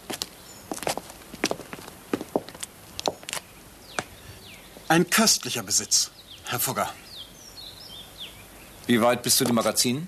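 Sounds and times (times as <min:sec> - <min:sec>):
low steady hiss: 0:00.0 - 0:10.0
small birds chirping: 0:00.0 - 0:10.0
man speaking: 0:04.9 - 0:07.0, 0:08.9 - 0:10.0.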